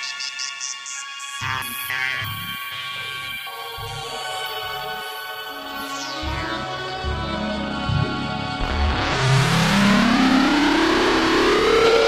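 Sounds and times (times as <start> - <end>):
electronic dance music: 0.0 - 12.0
siren-like tone rising in pitch: 3.9 - 12.0.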